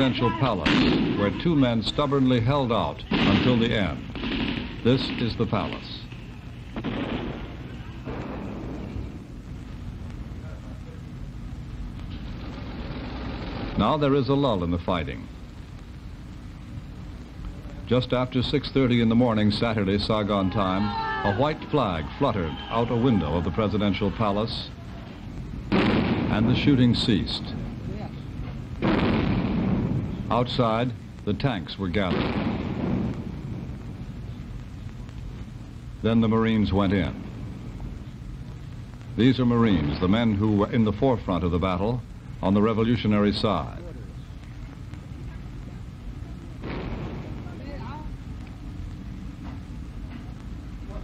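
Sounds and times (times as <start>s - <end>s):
explosion blasts: 0.0s - 1.7s, 3.1s - 5.8s, 6.8s - 9.5s, 25.6s - 28.0s, 28.7s - 30.6s, 31.9s - 34.2s, 46.6s - 47.9s
loud rumbling location noise: 0.0s - 51.0s
steady low hum: 0.0s - 51.0s
gunfire: 0.6s - 1.6s, 3.1s - 5.8s, 6.8s - 9.2s, 25.7s - 27.2s, 28.8s - 30.2s, 32.0s - 33.8s, 46.6s - 47.6s.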